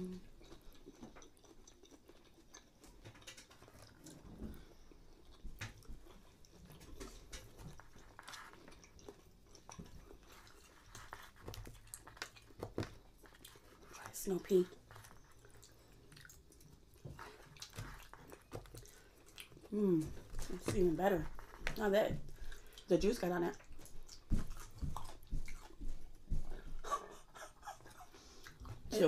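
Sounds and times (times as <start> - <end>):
chewing food: 0.0 - 29.0.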